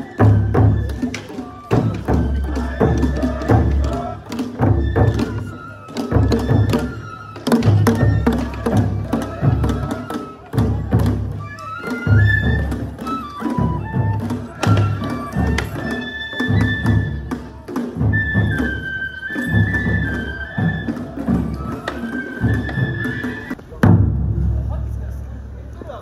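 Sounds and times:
heavy drum beats: 0.0 - 11.4, 19.8 - 26.0
bamboo flutes melody: 0.0 - 24.1
taiko drum strike: 23.7 - 25.2.

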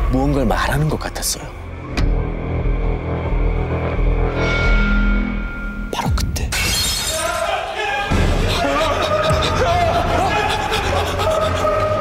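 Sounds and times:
dark background music: 0.0 - 12.0.

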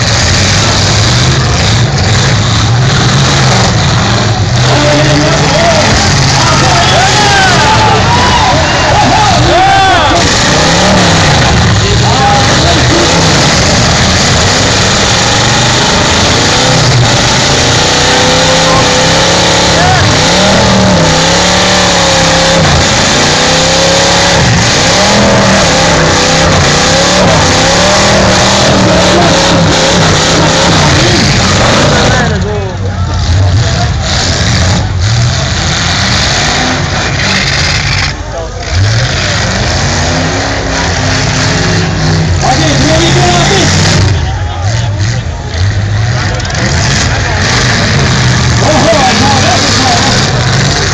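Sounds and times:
car engines revving loudly: 0.0 - 50.9
dense background noise: 0.0 - 50.9.

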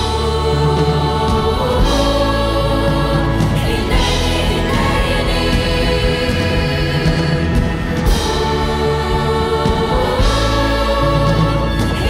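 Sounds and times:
choir singing held chords: 0.0 - 12.0
live band with strings and organ: 0.0 - 12.0.

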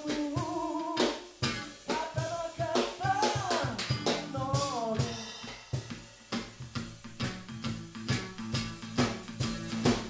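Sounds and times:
drum hits: 0.0 - 10.0
electric guitar chords: 0.0 - 10.0
cymbal crash: 4.7 - 7.0.

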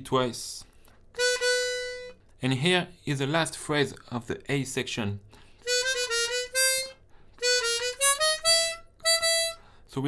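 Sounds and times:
harmonica single notes: 1.1 - 2.2, 5.6 - 9.8.

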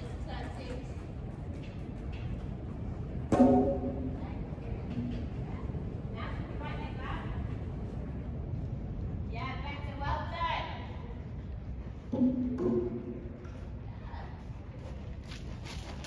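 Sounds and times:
low steady rumble: 0.0 - 16.0.

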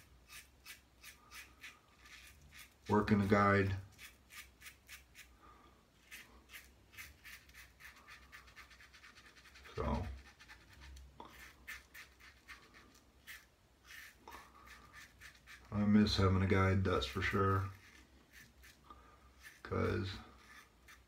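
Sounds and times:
razor scraping stubble: 0.0 - 5.4, 6.0 - 21.0.

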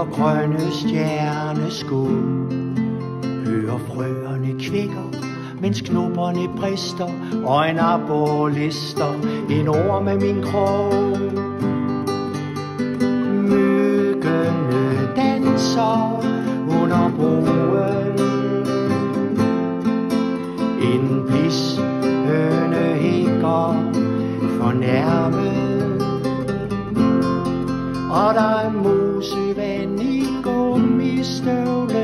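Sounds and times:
strummed acoustic guitar: 0.0 - 32.0.

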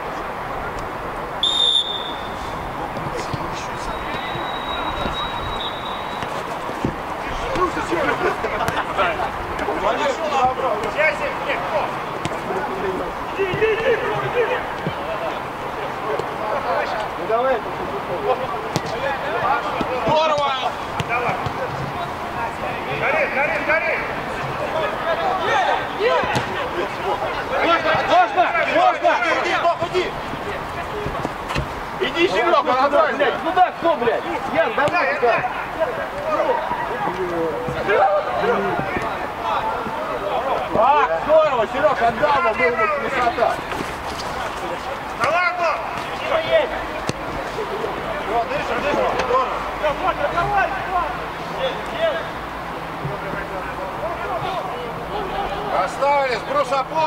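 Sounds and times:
short high whistle blast: 1.4 - 2.6, 3.9 - 6.2
players shouting: 1.4 - 57.0
ball being kicked: 18.7 - 19.0, 26.2 - 26.6.

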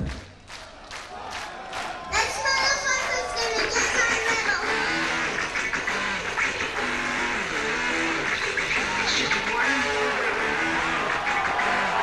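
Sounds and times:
crowd cheering and screaming: 1.1 - 3.8, 8.6 - 12.0.

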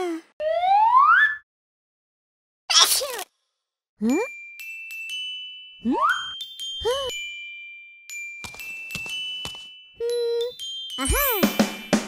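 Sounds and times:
bright chime tones: 4.2 - 12.0.

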